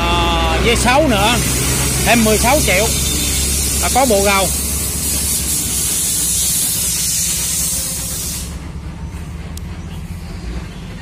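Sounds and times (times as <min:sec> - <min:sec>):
loud spraying hiss: 0:00.7 - 0:08.6.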